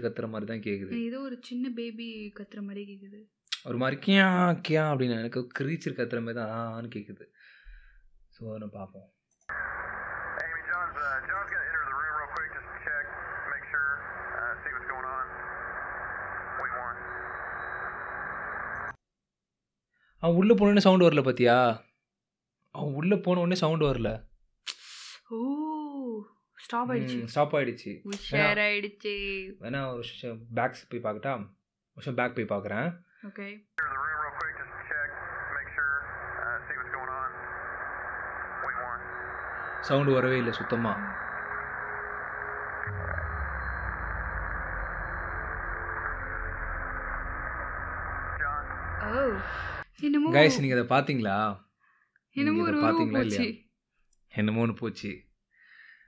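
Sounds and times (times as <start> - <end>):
radio static hiss: 9.5 - 18.9, 33.8 - 50.9, 52.4 - 53.5
voices over two-way radio: 9.6 - 18.8, 26.9 - 27.3, 28.2 - 28.6, 33.8 - 43.4, 48.1 - 50.8, 52.4 - 53.5.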